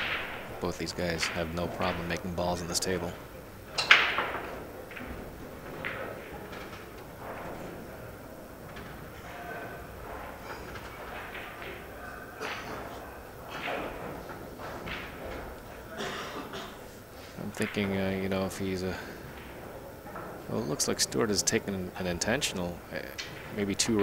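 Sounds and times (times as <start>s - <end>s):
faint distant voices: 0.6s - 24.0s.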